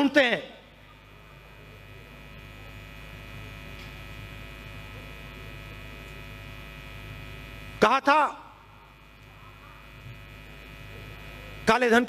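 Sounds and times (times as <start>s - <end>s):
electrical hum from sound system: 0.0s - 12.0s.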